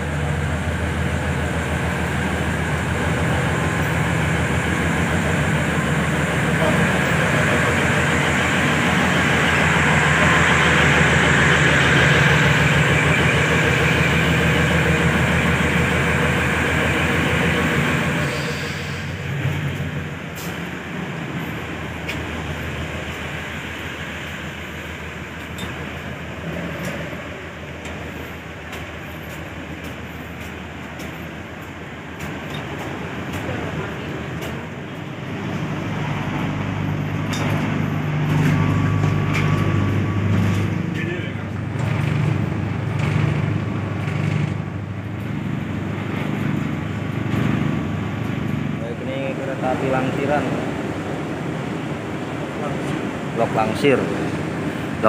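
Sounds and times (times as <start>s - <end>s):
diesel railcar engines idling: 0.0s - 55.0s
rushing hiss: 18.1s - 19.3s.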